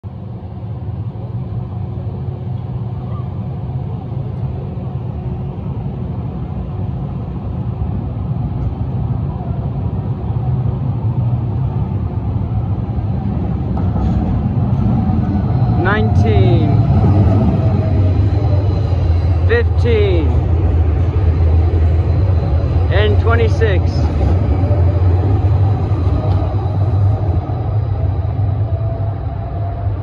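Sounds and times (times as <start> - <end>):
city street rumble: 0.0 - 30.0
light-rail train approaching: 0.0 - 30.0.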